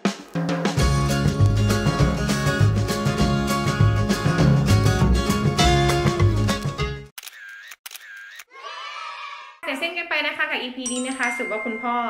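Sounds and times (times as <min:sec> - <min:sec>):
background music: 0:00.0 - 0:07.1
camera shutter sound effects: 0:07.2 - 0:08.5.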